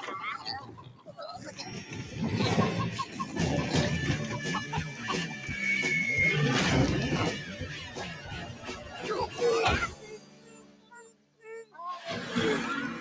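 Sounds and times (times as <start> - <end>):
squeaky clucking cartoon chatter: 0.0 - 13.0
cartoon background music: 1.4 - 13.0.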